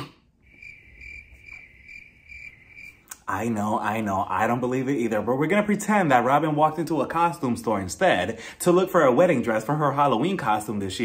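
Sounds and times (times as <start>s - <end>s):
crickets chirping: 0.4s - 3.1s.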